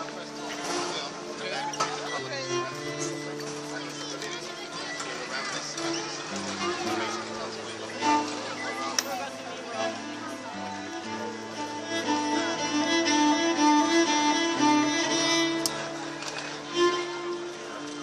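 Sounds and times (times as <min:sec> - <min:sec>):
bowed cello melody: 0:00.0 - 0:18.0.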